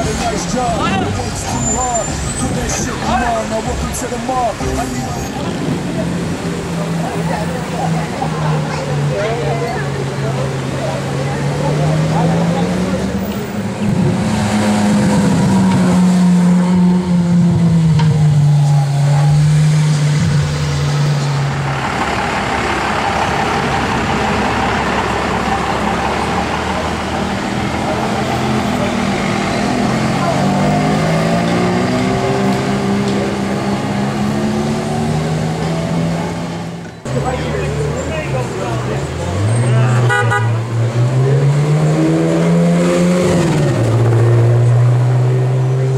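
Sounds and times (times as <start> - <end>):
rushing noise: 0.0 - 8.7
car engines accelerating past: 4.6 - 45.9.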